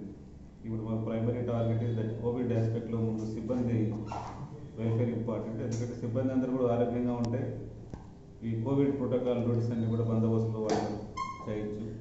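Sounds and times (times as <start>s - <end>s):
man speaking: 0.0s - 7.7s, 8.4s - 12.0s.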